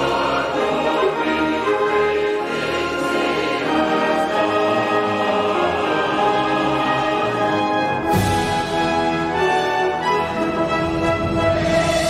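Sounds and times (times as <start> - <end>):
mixed choir singing: 0.0 - 12.0
orchestra and brass accompaniment: 0.0 - 12.0.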